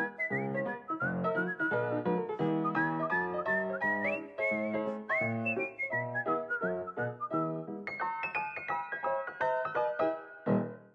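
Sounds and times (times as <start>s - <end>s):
whistled melody: 0.0s - 10.9s.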